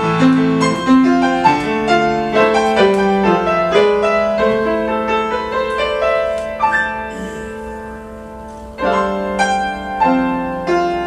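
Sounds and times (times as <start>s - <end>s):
solo grand piano: 0.0s - 11.0s.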